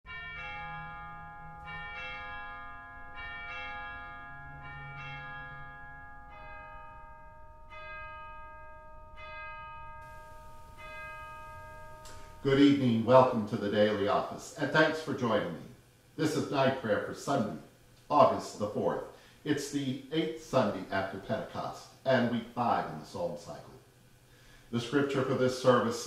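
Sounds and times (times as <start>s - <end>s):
bells ringing: 0.1s - 14.4s.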